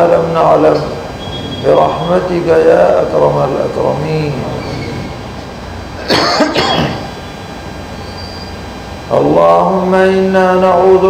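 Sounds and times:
man coughing: 0:06.0 - 0:07.2.

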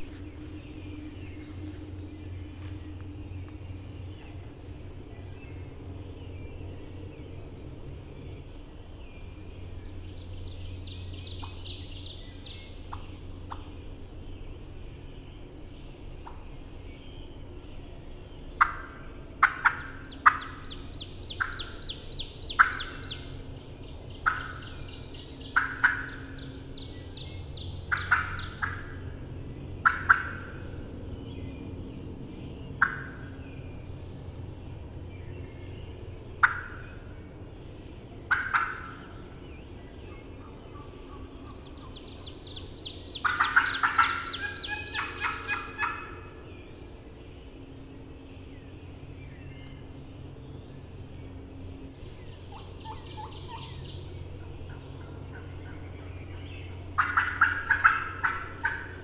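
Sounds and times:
turkey yelps and clucks: 0:25.6 - 0:26.1, 0:38.3 - 0:39.0, 0:43.2 - 0:46.1, 0:57.0 - 0:59.0.

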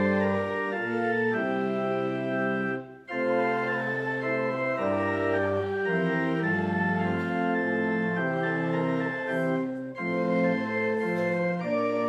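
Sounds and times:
organ playing a hymn: 0:00.0 - 0:12.0.

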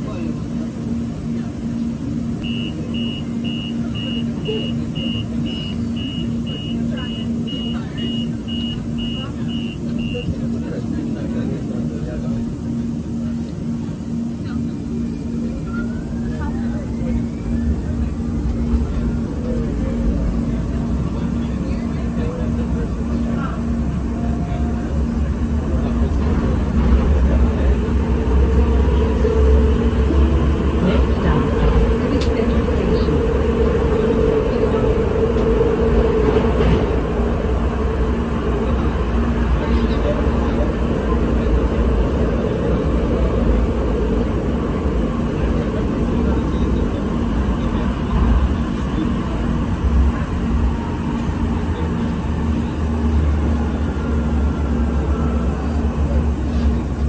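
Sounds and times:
train rumbling into station: 0:00.0 - 0:57.0
high beeps: 0:02.4 - 0:10.3.

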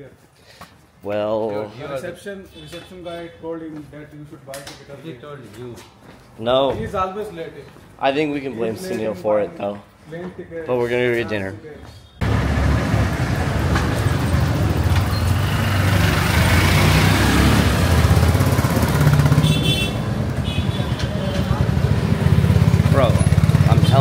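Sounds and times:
scooter and motorcycle engines: 0:12.2 - 0:24.0.

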